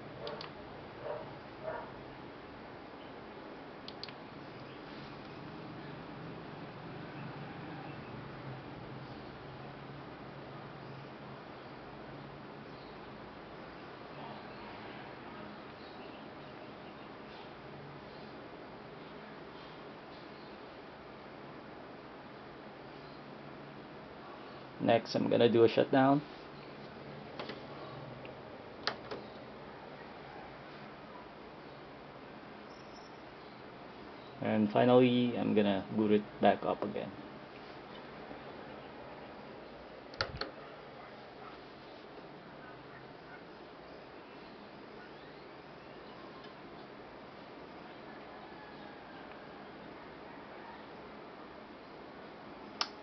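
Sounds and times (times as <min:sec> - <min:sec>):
computer fans humming: 0:00.0 - 0:53.0
faint steady hiss: 0:00.0 - 0:53.0.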